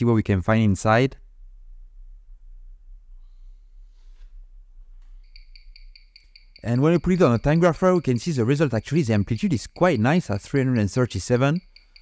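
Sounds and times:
faint low hum: 0.0 - 12.0
watch ticking through speaker: 5.2 - 12.0.

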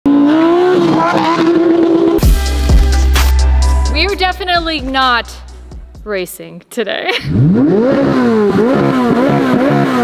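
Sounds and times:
car engines revving high: 0.1 - 2.2, 7.2 - 10.0.

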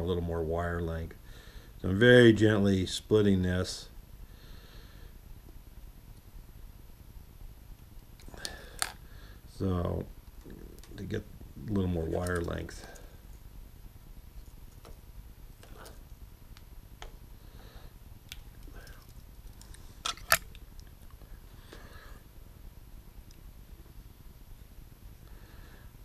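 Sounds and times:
low steady hum: 0.0 - 26.0
wire clicks and rustles: 10.2 - 13.5, 14.3 - 17.2, 18.2 - 21.2.

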